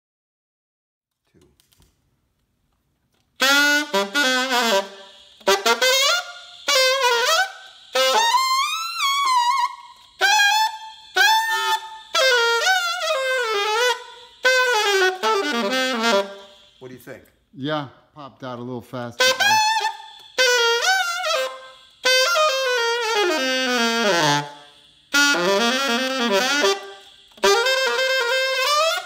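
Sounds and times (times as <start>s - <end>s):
solo alto saxophone phrases: 3.4s - 16.8s, 19.2s - 29.0s.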